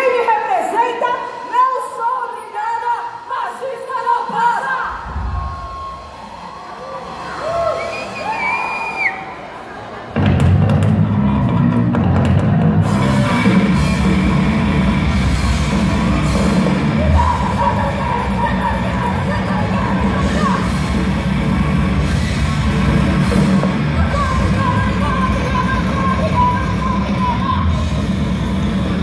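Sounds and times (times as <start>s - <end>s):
crowd shouting and cheering: 0.0s - 29.0s
live metal band playing: 10.2s - 29.0s.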